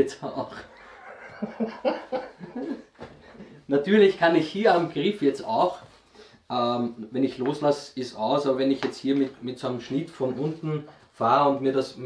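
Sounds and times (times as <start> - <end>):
men laughing: 0.4 - 3.6.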